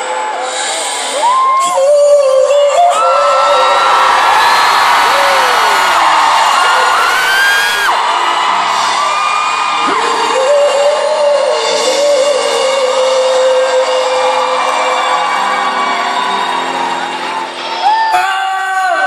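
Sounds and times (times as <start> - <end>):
fans screaming and whooping: 0.0 - 19.0
live pop band: 0.0 - 19.0.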